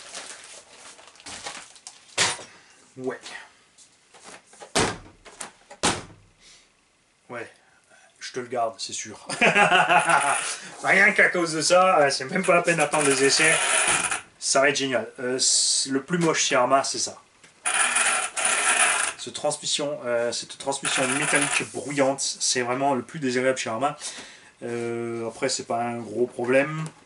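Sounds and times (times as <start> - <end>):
hard thump: 4.7 - 6.3
toy truck gears rattling: 12.7 - 14.2, 17.6 - 19.2, 20.9 - 21.6.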